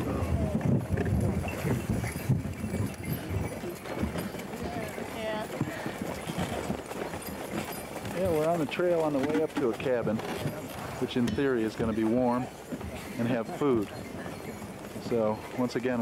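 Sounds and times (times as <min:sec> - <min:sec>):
horse hoofbeats on snow: 0:00.0 - 0:16.0
sleigh rumbling: 0:00.0 - 0:16.0.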